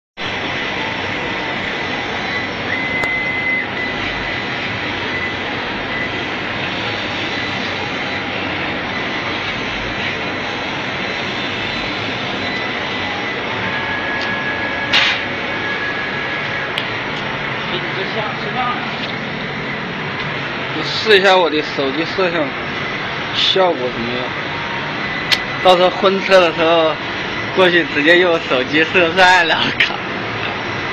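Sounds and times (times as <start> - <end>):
machinery hissing and whining: 0.2 - 30.9.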